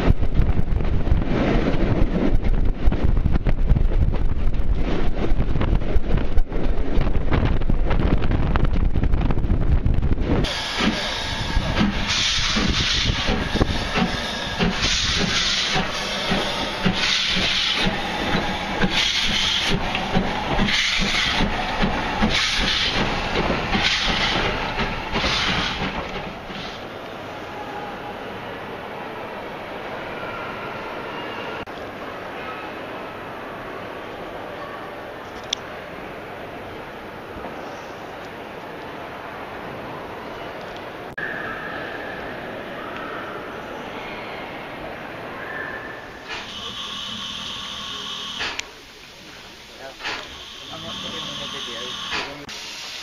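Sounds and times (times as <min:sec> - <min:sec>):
steam locomotive exhaust beats: 0:00.0 - 0:27.1, 0:45.4 - 0:53.0
train rumbling: 0:00.0 - 0:53.0
wheels clicking over track: 0:11.7 - 0:26.8.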